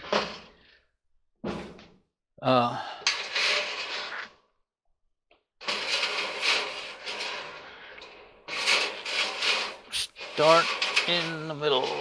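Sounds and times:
metal scraping and rattling: 0.0 - 0.6, 3.0 - 4.4, 5.6 - 12.0.

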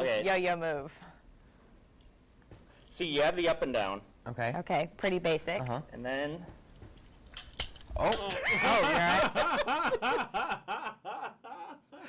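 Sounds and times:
men laughing: 8.0 - 12.0.

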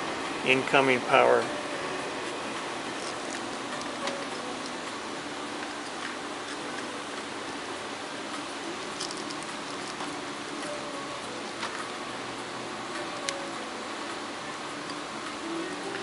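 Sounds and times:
air-conditioning hiss: 0.0 - 16.0.

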